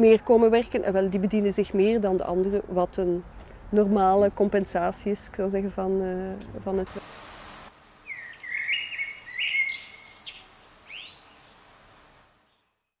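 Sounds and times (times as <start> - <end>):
upward-sweeping bird call: 8.0 - 11.7
birds chirping: 8.0 - 13.0.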